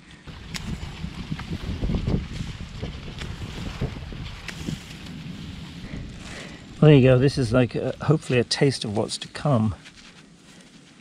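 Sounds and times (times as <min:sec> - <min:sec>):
rustling of dry vines and soil: 0:00.0 - 0:11.0
wind buffeting microphone: 0:00.2 - 0:09.5.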